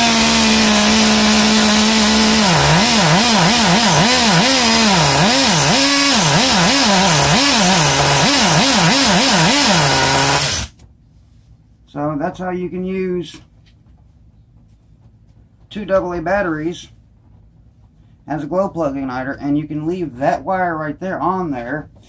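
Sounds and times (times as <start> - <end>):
rc car engine revving: 0.0 - 10.8.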